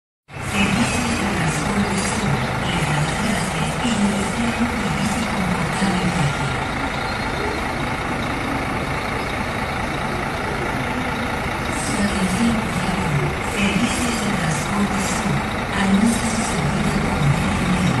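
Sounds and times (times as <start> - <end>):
diesel bus engine idling: 0.3 - 18.0
people talking indistinctly: 0.5 - 18.0.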